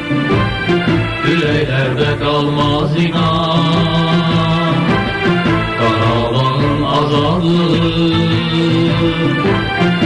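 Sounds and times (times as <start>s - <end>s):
male vocal group chanting: 1.2s - 9.6s.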